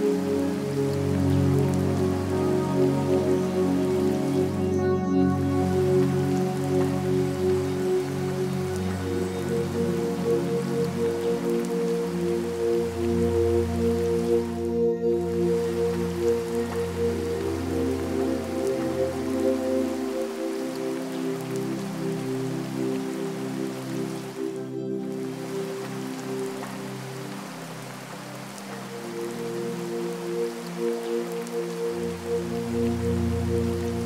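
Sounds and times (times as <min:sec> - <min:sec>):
calm ambient music: 0:00.0 - 0:34.0
rain pattering: 0:00.0 - 0:34.0.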